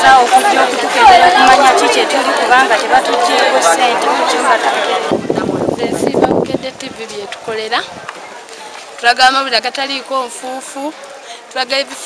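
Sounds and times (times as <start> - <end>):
crowd chattering: 0.0 - 12.0
woman speaking: 5.8 - 7.9.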